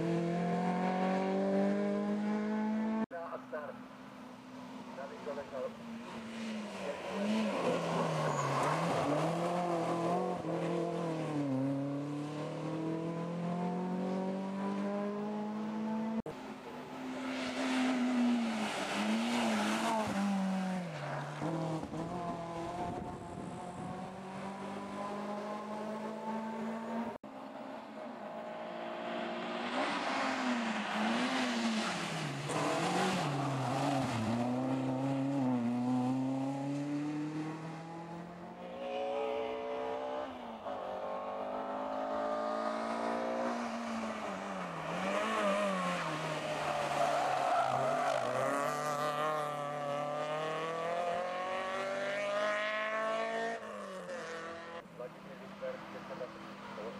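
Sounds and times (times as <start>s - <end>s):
rally car engines revving: 0.0s - 3.2s, 4.7s - 56.9s
tyre squeal: 7.4s - 9.2s.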